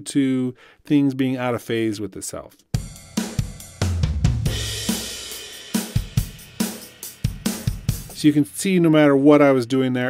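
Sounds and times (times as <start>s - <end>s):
drum kit playing a beat: 2.8s - 9.1s
cymbal crash: 2.9s - 8.4s.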